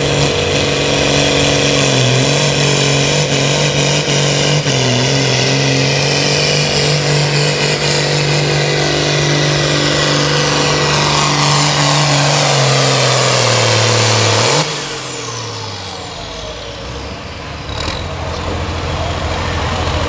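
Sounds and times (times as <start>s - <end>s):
high turbo whine: 0.0s - 20.0s
tractor diesel engine under load: 0.0s - 20.0s.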